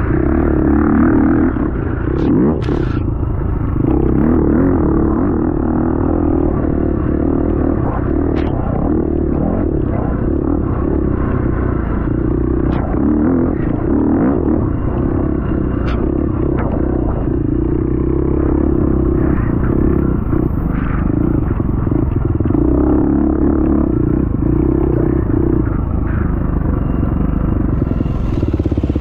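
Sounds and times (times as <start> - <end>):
dirt bike engine droning: 0.0 - 29.0.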